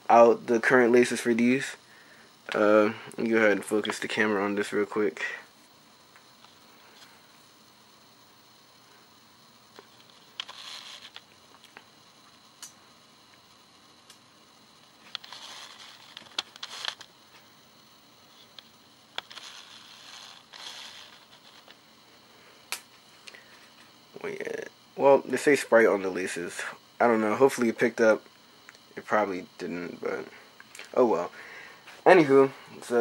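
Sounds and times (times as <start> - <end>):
camera handling rustles: 10.0 - 11.3, 15.1 - 17.1, 19.2 - 21.8.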